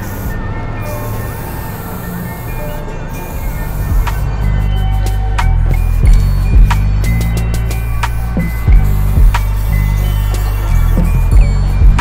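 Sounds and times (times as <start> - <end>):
beat with deep bass: 3.4 - 12.0
drum hits: 6.0 - 7.0, 8.4 - 9.6.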